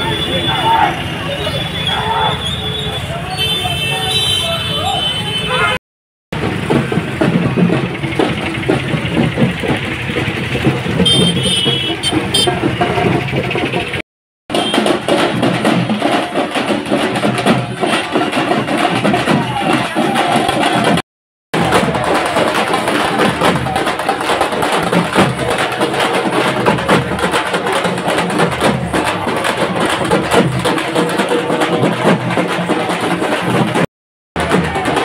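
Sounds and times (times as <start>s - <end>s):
drums beaten with sticks: 6.3s - 35.0s.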